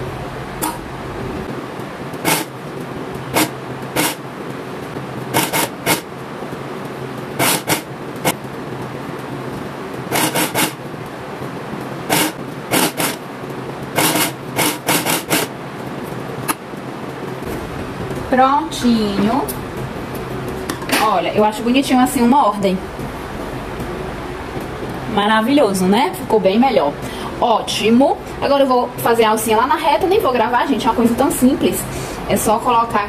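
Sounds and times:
sewing machine motor humming: 2.2s - 2.5s, 10.1s - 10.8s
sewing machine stitching bursts: 2.2s - 2.5s, 3.3s - 4.2s, 5.4s - 6.0s, 7.4s - 7.9s, 10.1s - 10.8s, 12.1s - 13.2s, 14.0s - 15.5s.

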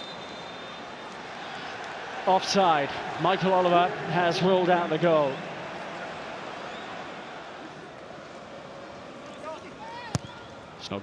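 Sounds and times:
stadium crowd murmur: 0.2s - 11.0s
ball kicked thud: 10.1s - 10.3s.

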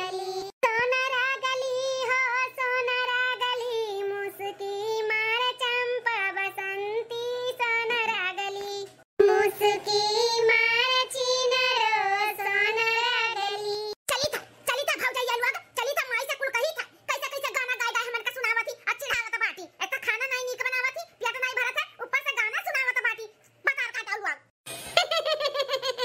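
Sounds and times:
high-pitched voice singing: 0.0s - 16.3s.

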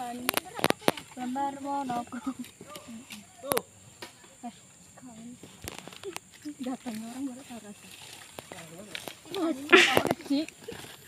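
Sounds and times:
quiet talk from a group: 0.0s - 11.0s.

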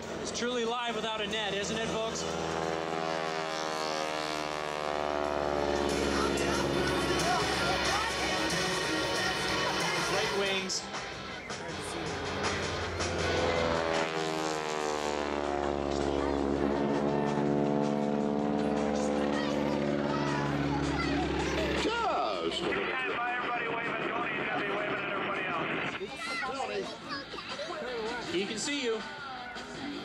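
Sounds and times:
biplane engine flying past: 0.0s - 26.3s.

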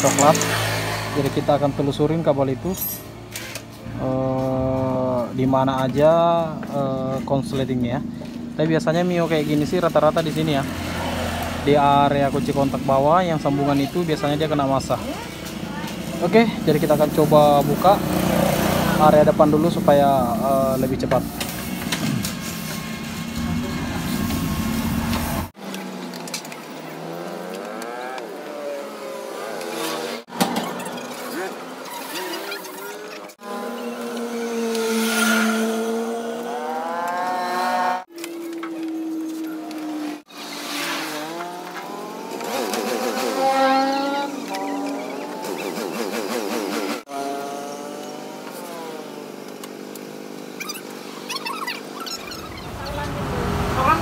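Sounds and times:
motorcycle engines revving: 0.0s - 54.0s.

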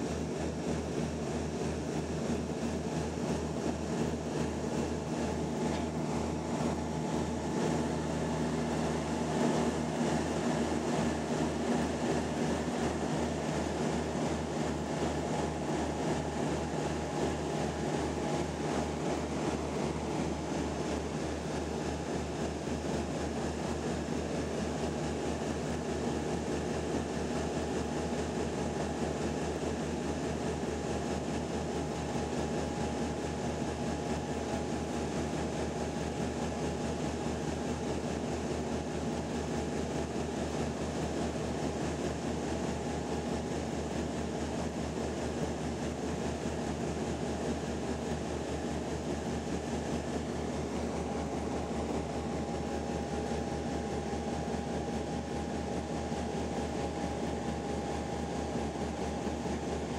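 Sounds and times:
turboprop engine drone: 0.0s - 59.9s.

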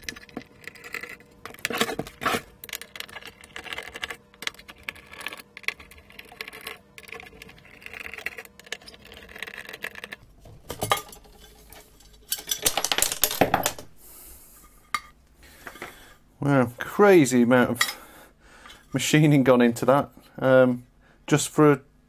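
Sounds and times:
metal cover clattering: 10.6s - 12.8s.

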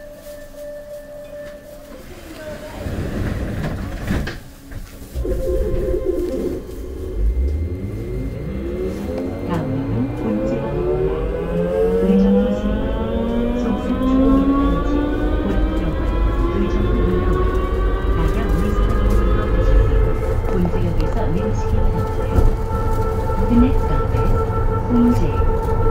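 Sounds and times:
train low rumble: 0.0s - 25.9s
rising multi-tone whine: 5.2s - 25.9s.

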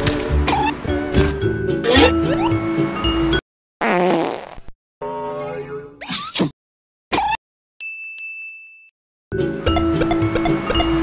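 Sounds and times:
cartoon fart sound effect: 3.8s - 4.7s.

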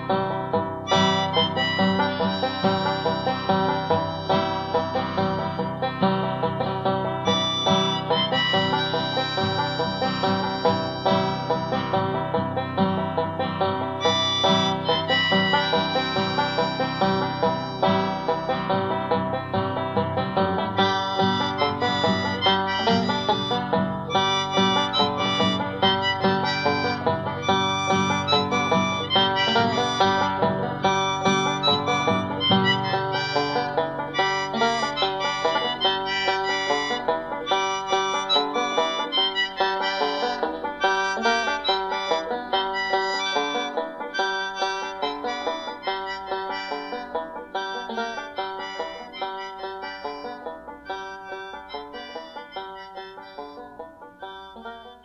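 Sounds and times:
banjo picking fast notes: 0.0s - 55.0s.

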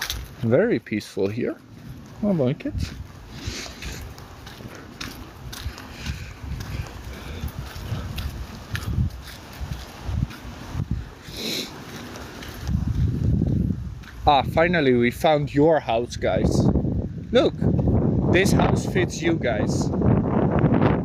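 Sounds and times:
footsteps on dirt: 0.0s - 15.2s
wind buffeting microphone: 0.0s - 21.0s.

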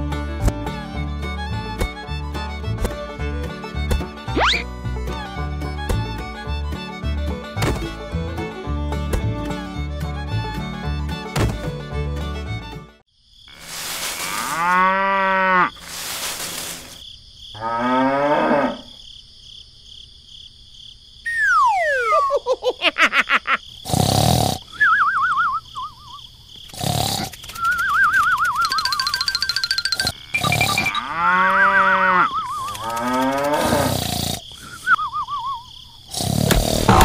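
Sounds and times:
country fiddle music: 0.0s - 13.0s
cow mooing: 14.2s - 15.7s, 17.6s - 18.9s, 30.4s - 34.2s
rattle of ticks: 26.6s - 30.9s, 32.5s - 34.5s
long falling whistle: 34.7s - 35.7s
thumps: 36.4s - 37.0s.

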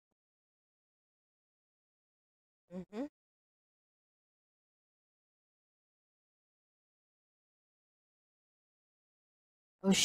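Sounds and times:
person saying mm-hmm: 2.8s - 3.1s.

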